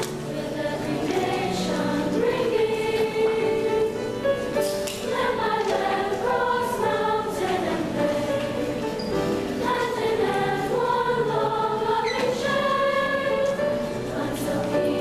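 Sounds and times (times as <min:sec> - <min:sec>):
girls' chorus singing: 0:00.0 - 0:15.0
piano accompaniment: 0:00.0 - 0:15.0.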